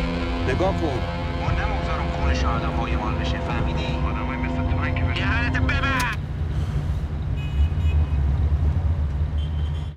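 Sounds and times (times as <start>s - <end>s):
car engine rumble: 0.0s - 9.5s
road noise inside car: 0.0s - 9.9s.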